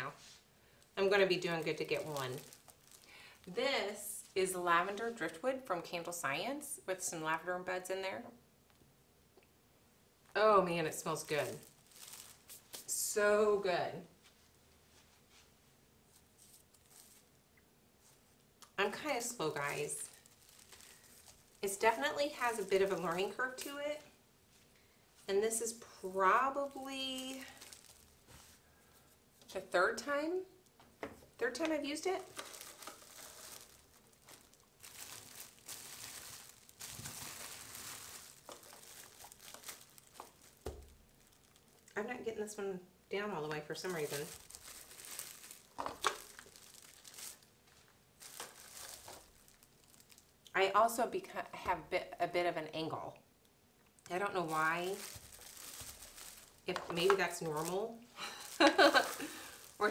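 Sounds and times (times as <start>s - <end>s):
plastic film crinkling: 0.0s - 4.4s, 10.3s - 12.9s, 16.1s - 17.4s, 19.0s - 24.0s, 25.6s - 28.6s, 31.5s - 42.0s, 43.7s - 50.5s, 54.0s - 59.9s.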